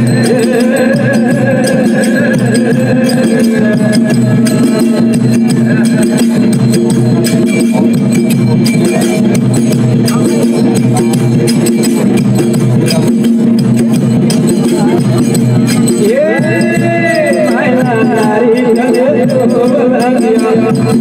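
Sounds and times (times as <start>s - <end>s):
voices singing: 0.0s - 6.9s, 14.4s - 21.0s
live devotional folk music: 0.0s - 21.0s
metal plate struck with stick: 1.4s - 21.0s.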